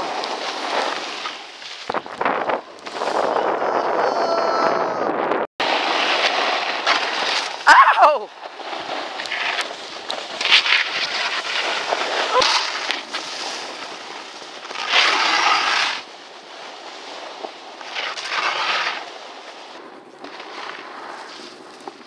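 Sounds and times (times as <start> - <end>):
snowboard scraping on snow: 0.0 - 3.9, 5.6 - 22.0
wind over microphone: 1.9 - 5.5
person shouting: 3.8 - 5.2, 7.7 - 8.3.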